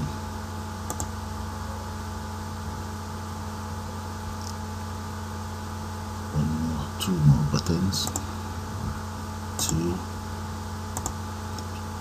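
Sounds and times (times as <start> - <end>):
low electrical hum: 0.0 - 12.0
computer clicks: 0.8 - 1.1, 8.0 - 8.3, 10.9 - 11.8.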